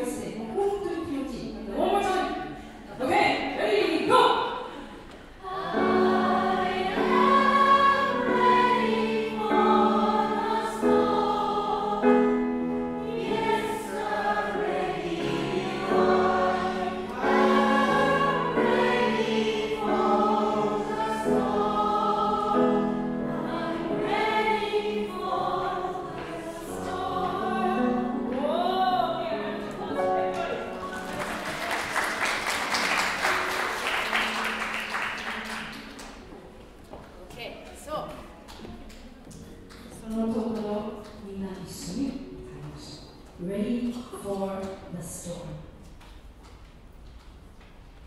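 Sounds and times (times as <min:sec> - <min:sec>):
grand piano chords: 0:04.5 - 0:37.7.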